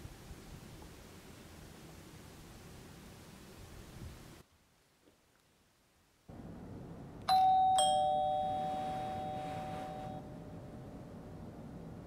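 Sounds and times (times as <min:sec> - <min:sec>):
steady low hum: 0:06.3 - 0:12.0
two-note doorbell chime: 0:07.3 - 0:10.6.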